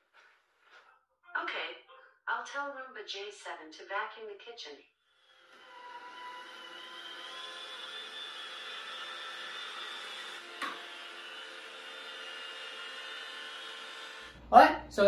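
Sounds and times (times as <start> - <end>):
robot vacuum whirring: 5.2 - 14.4.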